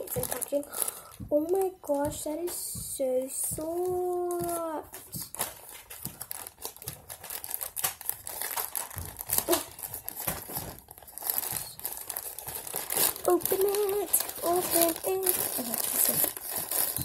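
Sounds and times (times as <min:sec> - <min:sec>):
plastic bag crinkling: 0:00.0 - 0:17.0.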